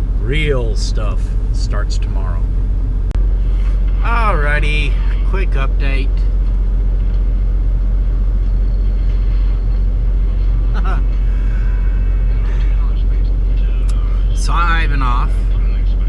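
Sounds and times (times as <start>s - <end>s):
truck engine low rumble: 0.0s - 16.0s.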